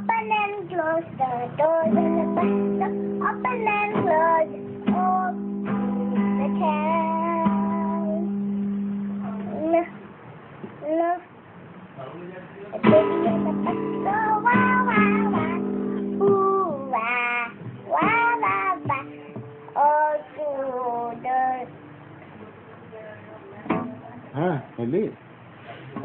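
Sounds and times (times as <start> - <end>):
girl singing wordless phrases: 0.0 - 8.4, 9.5 - 10.0, 10.8 - 11.3, 12.8 - 21.8
acoustic guitar strum: 0.0 - 9.8, 12.8 - 22.3, 23.6 - 24.4.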